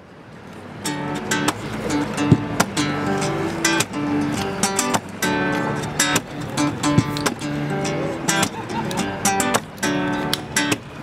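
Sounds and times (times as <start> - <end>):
acoustic guitar picking and strumming: 0.7 - 11.0.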